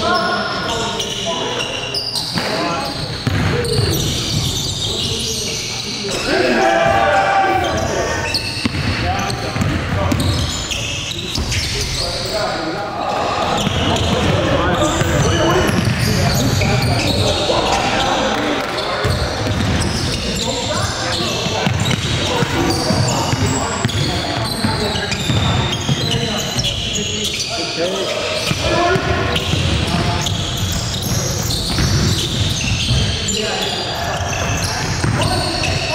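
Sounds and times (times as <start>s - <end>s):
players shouting: 6.1s - 8.4s
basketball bouncing on wooden floor: 28.5s - 33.1s.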